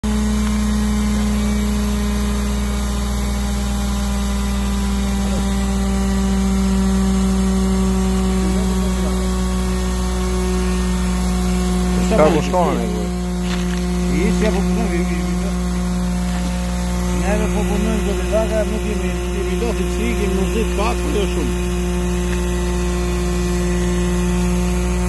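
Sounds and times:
hydraulic power unit humming: 0:00.0 - 0:25.0.

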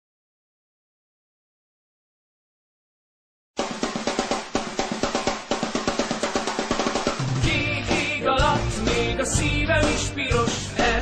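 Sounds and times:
drum kit hits: 0:03.6 - 0:11.0
rock band playing: 0:07.1 - 0:11.0.

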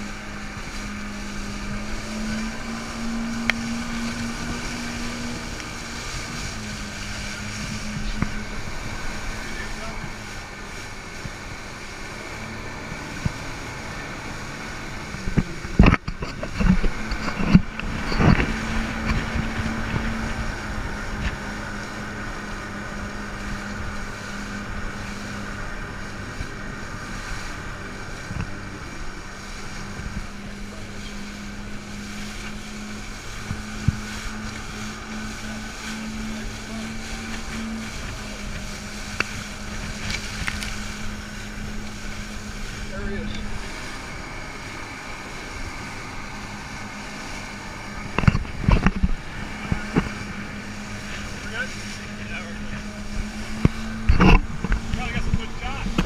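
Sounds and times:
outboard motors droning: 0:00.0 - 0:56.0
wind and water rushing: 0:00.0 - 0:56.0.

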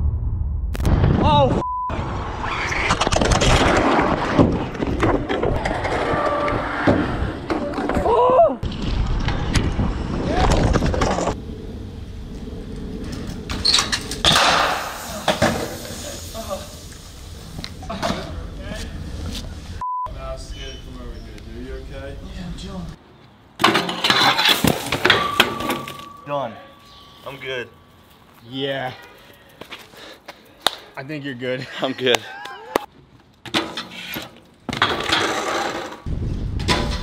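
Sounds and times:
censor bleeps: 0:01.6 - 0:02.0, 0:19.8 - 0:20.9
bike tyres rolling: 0:02.4 - 0:19.8
voices talking: 0:20.0 - 0:23.0, 0:25.8 - 0:32.9.

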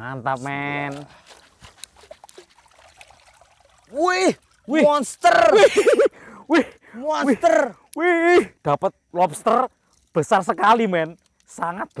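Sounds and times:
water trickling and dripping: 0:00.5 - 0:08.0
small clicks: 0:11.0 - 0:12.0.

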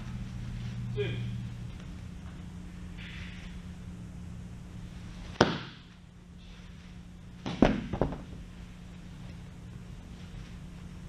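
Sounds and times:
baseballs knocking catcher's gear: 0:05.3 - 0:05.9, 0:07.4 - 0:08.4.

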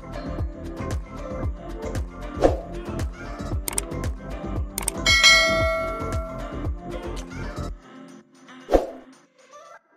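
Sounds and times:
click: 0:03.7 - 0:03.9, 0:04.8 - 0:06.3
bright bell chime: 0:04.9 - 0:06.6.

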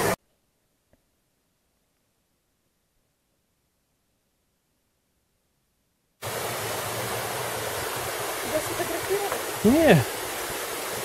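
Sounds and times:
waterfall and stream rushing: 0:06.2 - 0:11.0.

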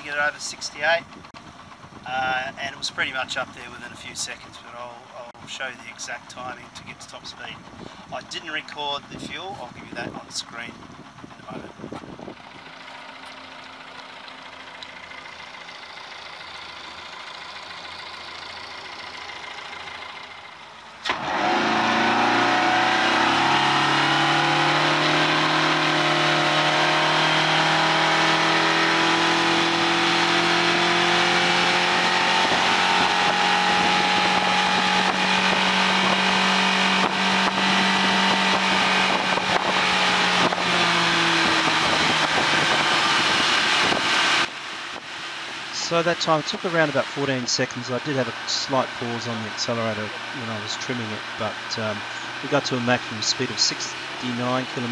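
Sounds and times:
outboard engine revving: 0:21.0 - 0:54.9.

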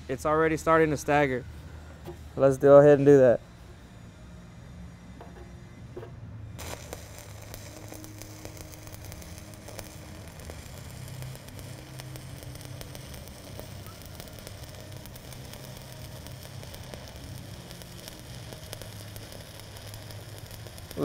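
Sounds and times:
low hum: 0:03.3 - 0:21.0
welding arc crackling: 0:06.6 - 0:21.0.

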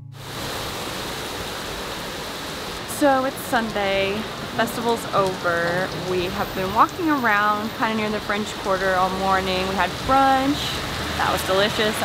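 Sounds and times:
heavy rain on street: 0:00.1 - 0:12.0.

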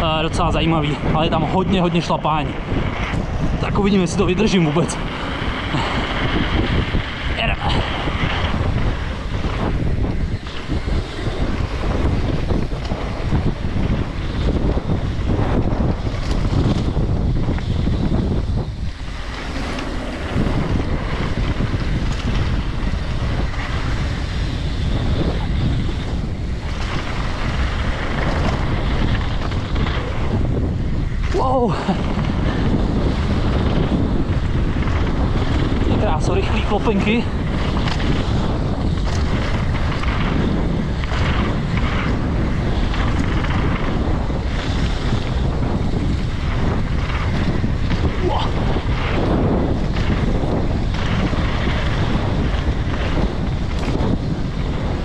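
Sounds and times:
mountain bike rolling and rattling: 0:00.0 - 0:55.0
wind buffeting a microphone: 0:00.0 - 0:55.0.

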